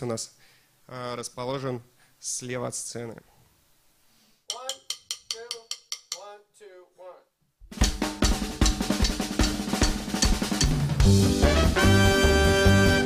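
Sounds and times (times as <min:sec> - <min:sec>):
drum kit playing: 0:07.7 - 0:13.0.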